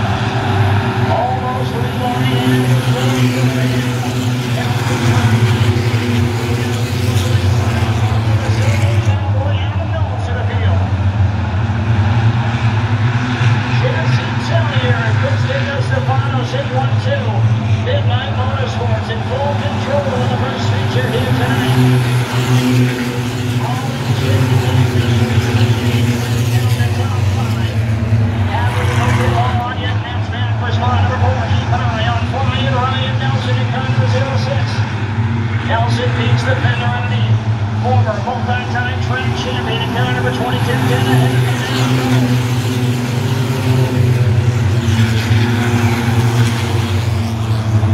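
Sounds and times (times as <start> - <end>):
racing car engines droning: 0.0 - 47.9
announcer over loudspeaker: 1.0 - 10.9, 13.7 - 34.8, 35.6 - 46.6.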